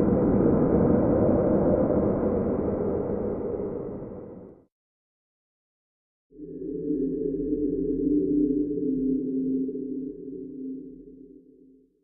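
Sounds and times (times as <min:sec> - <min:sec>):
low steady drone: 0:06.3 - 0:12.0.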